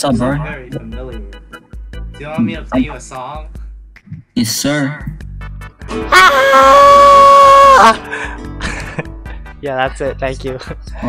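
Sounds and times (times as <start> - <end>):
background music with a beat: 0.0 - 4.1, 5.0 - 6.2, 7.9 - 11.0.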